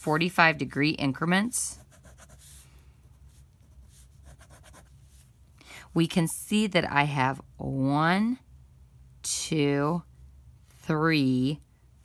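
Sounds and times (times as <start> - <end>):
pen scratching on paper: 1.7 - 2.6, 3.3 - 4.9.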